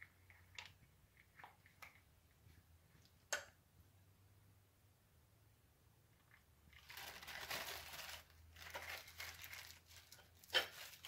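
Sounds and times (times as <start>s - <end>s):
plastic wrapping crinkling: 6.3s - 11.0s.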